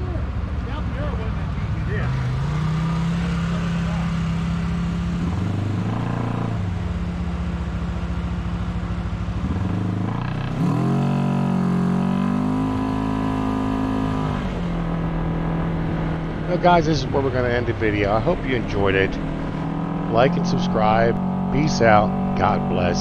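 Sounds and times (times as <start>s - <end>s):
utility vehicle engine revving: 0.0s - 23.0s.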